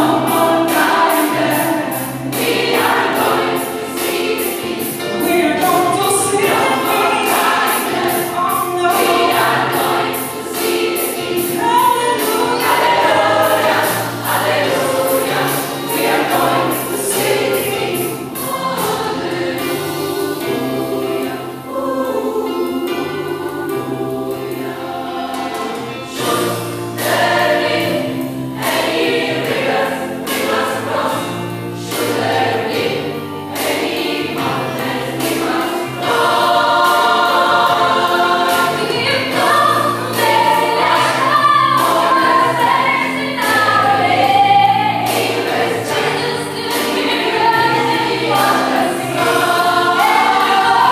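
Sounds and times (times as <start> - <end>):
gospel choir singing: 0.0 - 50.9.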